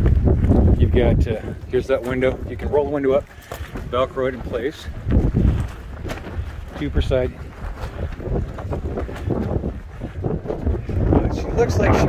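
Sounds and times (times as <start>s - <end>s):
wind rumbling on microphone: 0.0s - 12.0s
tent fabric buffeting: 3.8s - 11.9s.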